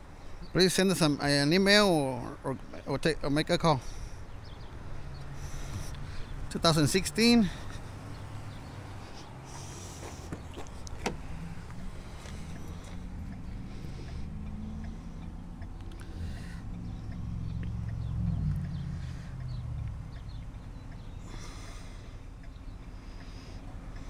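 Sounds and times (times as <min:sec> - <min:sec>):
vehicle engine passing by: 0:04.4 - 0:22.1.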